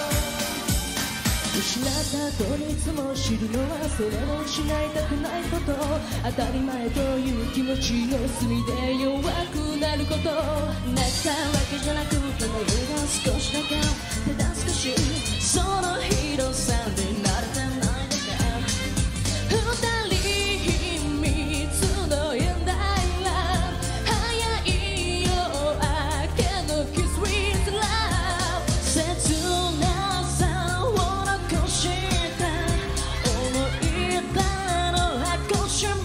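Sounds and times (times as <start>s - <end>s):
women singing into microphones: 0.0s - 0.9s, 1.6s - 36.0s
pop band with drums and bass: 0.0s - 36.0s.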